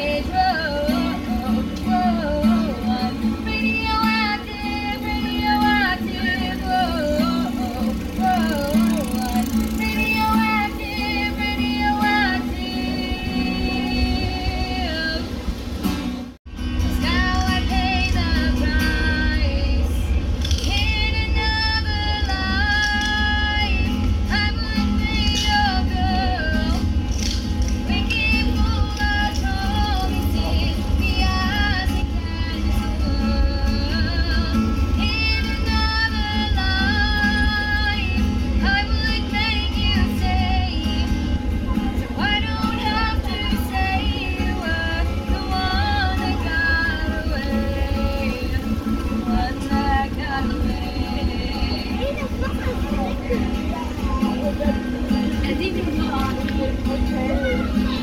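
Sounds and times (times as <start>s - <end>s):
woman singing: 0.0s - 15.4s, 16.9s - 58.0s
acoustic guitar strumming: 0.0s - 58.0s.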